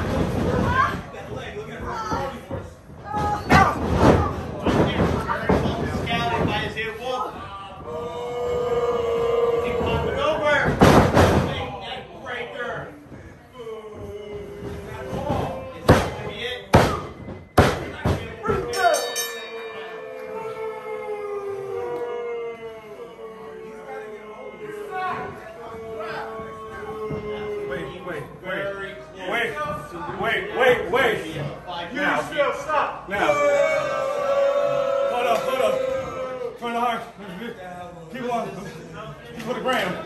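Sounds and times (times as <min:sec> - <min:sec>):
raised voices: 0:07.6 - 0:10.7, 0:18.4 - 0:28.3
heavy thumps or slams: 0:10.6 - 0:11.7, 0:15.8 - 0:18.7.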